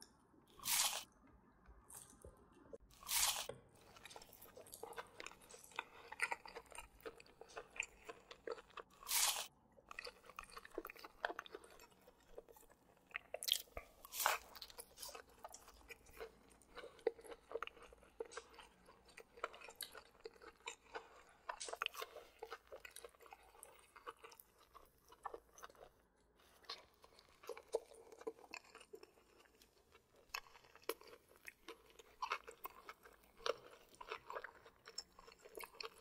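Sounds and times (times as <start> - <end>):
crackly chewing: 0.5 - 36.0
crunchy bites: 0.6 - 1.1, 3.0 - 11.9.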